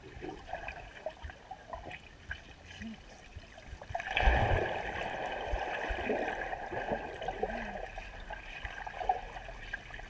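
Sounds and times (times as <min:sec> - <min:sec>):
muffled underwater water swirl: 0:00.0 - 0:10.0
bubbly pops and gurgles: 0:03.9 - 0:08.0.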